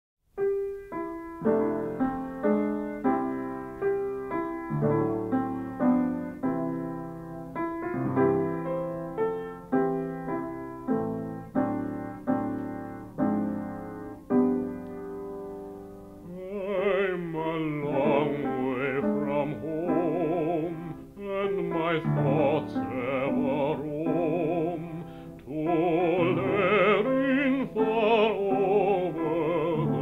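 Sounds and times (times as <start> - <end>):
piano chords ringing: 0.4 - 30.0.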